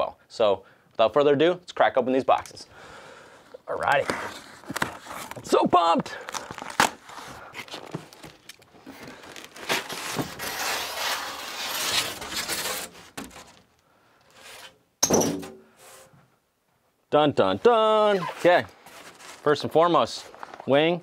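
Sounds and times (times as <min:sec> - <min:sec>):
cardboard tearing and scraping: 0:03.9 - 0:05.5, 0:06.2 - 0:13.6, 0:18.1 - 0:19.6
tape tearing: 0:03.9 - 0:05.6, 0:06.2 - 0:13.6, 0:18.1 - 0:19.5.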